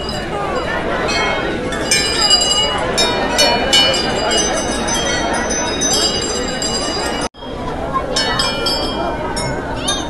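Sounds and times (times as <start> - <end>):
crowd chatter: 0.0 - 10.0
temple bells ringing: 0.0 - 10.0.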